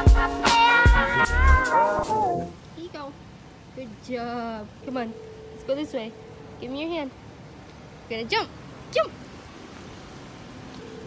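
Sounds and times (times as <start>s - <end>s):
hiss over wet pavement: 0.0s - 11.0s.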